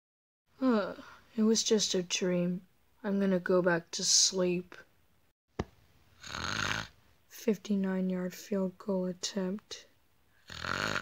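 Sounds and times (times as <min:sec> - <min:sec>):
person snoring: 0:06.2 - 0:07.0, 0:10.4 - 0:11.0.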